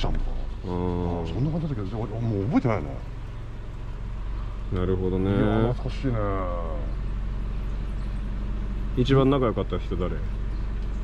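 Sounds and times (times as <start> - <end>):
faint engine hum: 0.0 - 11.0
low rumble of traffic: 0.0 - 11.0.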